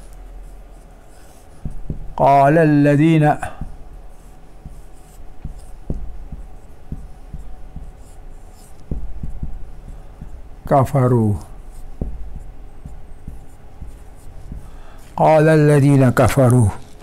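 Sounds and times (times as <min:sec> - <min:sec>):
marker pen writing on whiteboard: 0:00.0 - 0:17.0
man's voice: 0:02.2 - 0:03.6, 0:10.7 - 0:11.5, 0:15.2 - 0:16.8.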